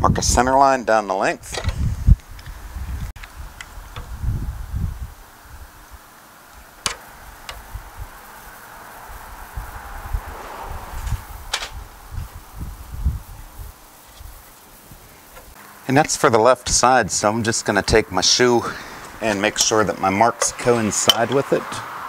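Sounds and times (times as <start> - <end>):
low rumbles: 1.4 - 15.6.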